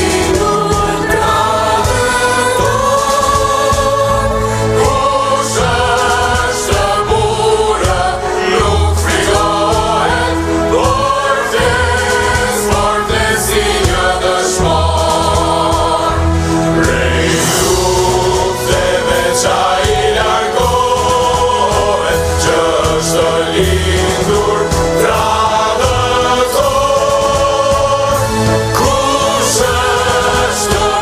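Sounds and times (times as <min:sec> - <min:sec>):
mixed choir singing: 0:00.0 - 0:31.0.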